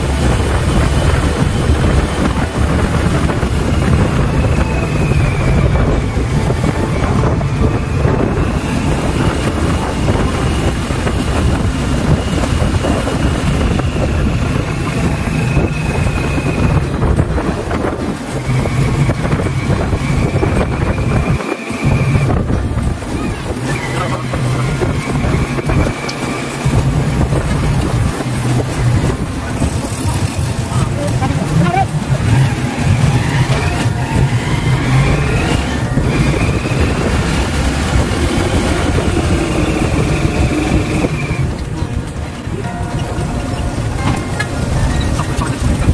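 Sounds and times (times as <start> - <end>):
vehicle engine running: 0.0 - 45.9
wind buffeting microphone: 0.0 - 45.9.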